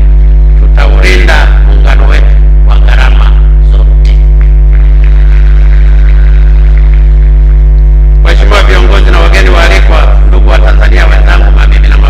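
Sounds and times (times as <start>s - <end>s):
loud electrical mains hum: 0.0s - 12.0s.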